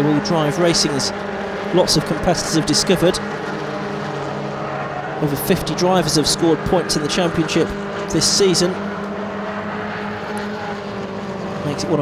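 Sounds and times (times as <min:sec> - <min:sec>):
race car engines: 0:00.0 - 0:12.0.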